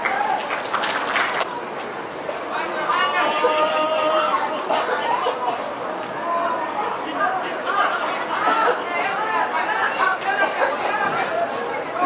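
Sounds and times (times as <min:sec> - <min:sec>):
overlapping voices chatting: 0:00.0 - 0:12.0.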